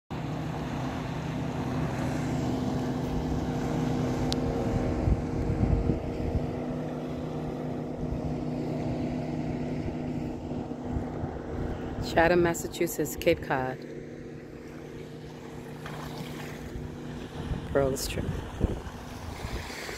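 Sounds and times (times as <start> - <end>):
motorboat engine drone: 0.1 - 19.9
wind gusts on microphone: 4.4 - 6.7, 15.9 - 19.9.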